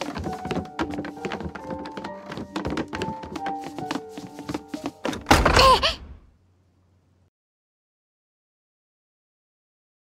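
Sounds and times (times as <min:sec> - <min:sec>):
slow sad piano melody: 0:00.0 - 0:06.0
short falling voice-like cry: 0:05.5 - 0:06.1.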